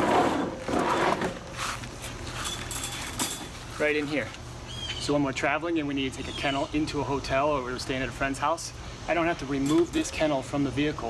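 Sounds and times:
wire and plastic rattling: 0:02.1 - 0:03.6.

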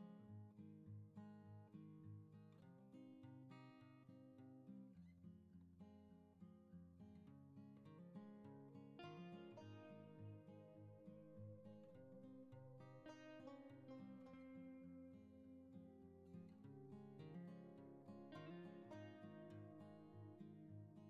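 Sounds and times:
acoustic guitar music: 0:00.0 - 0:21.0.

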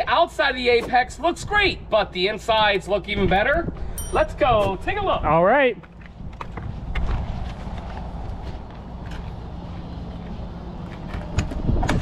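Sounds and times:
steady low rumble: 0:01.4 - 0:12.0
footsteps: 0:05.8 - 0:11.4.

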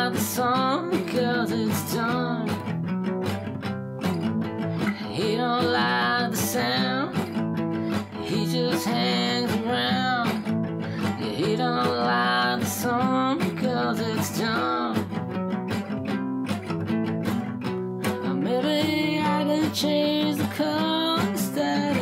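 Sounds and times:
strummed acoustic guitar: 0:00.0 - 0:22.0.

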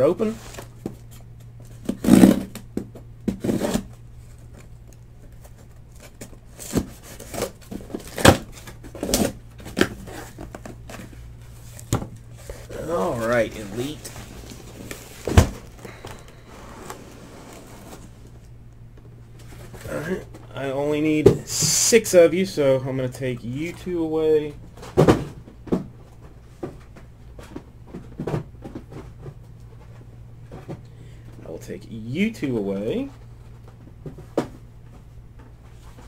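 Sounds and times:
cardboard rustling and tearing: 0:05.3 - 0:15.8.

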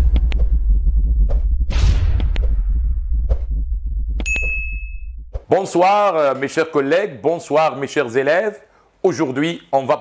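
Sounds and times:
low rumble: 0:00.0 - 0:05.4
bell-like ding: 0:04.2 - 0:05.2.

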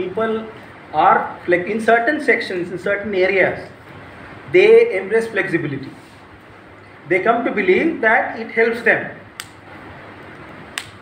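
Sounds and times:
low hiss of room noise: 0:00.0 - 0:11.0.

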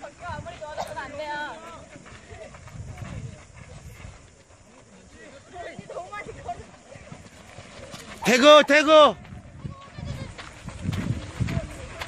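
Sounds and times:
distant players shouting and chatter: 0:00.0 - 0:12.0.

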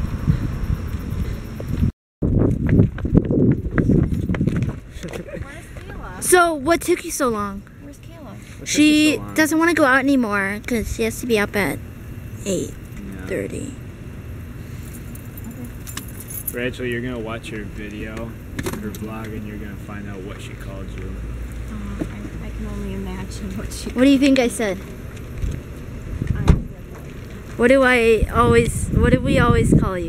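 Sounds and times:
steady low hum: 0:00.0 - 0:30.0
footsteps on pavement: 0:00.9 - 0:06.3, 0:23.4 - 0:27.6
keys jangling: 0:14.8 - 0:16.6.

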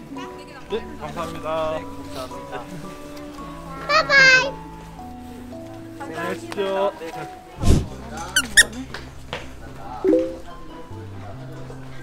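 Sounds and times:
background music: 0:00.0 - 0:12.0
squeaky cartoon chirps: 0:08.4 - 0:08.7.

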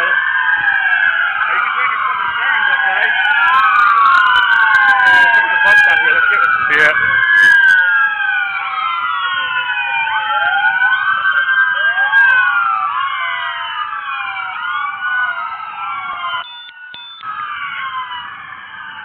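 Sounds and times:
emergency vehicle sirens: 0:00.0 - 0:19.0.

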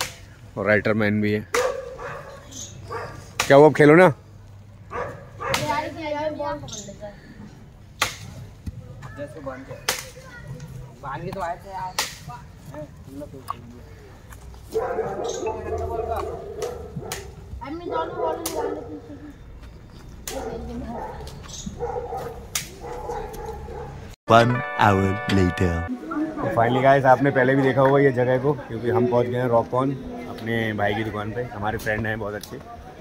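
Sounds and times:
dog giving whiny barks: 0:01.6 - 0:03.3, 0:04.9 - 0:05.8, 0:14.7 - 0:18.9, 0:20.3 - 0:24.0
sharp crack: 0:08.0 - 0:08.4, 0:22.5 - 0:22.8.

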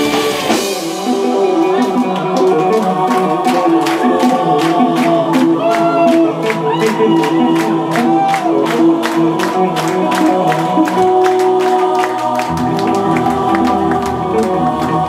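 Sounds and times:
choir-like singing: 0:00.0 - 0:15.0
metal band playing live: 0:00.0 - 0:15.0
steady drum beat: 0:00.0 - 0:15.0.

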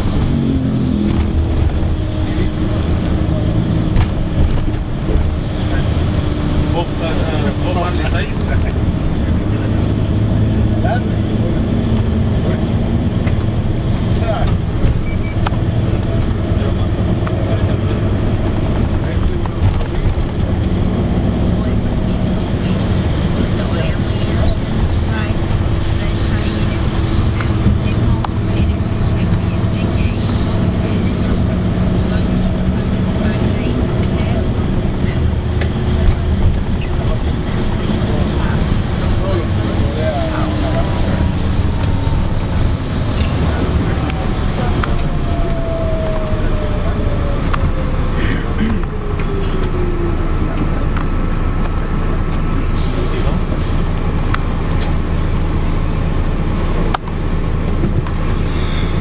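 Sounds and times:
engine drone: 0:00.0 - 0:59.0
road noise: 0:00.0 - 0:59.0.

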